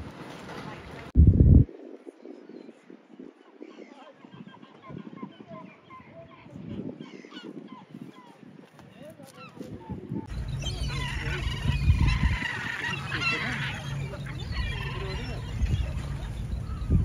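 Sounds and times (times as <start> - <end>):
low rumble: 1.2 - 1.7
gulls calling: 9.3 - 17.0.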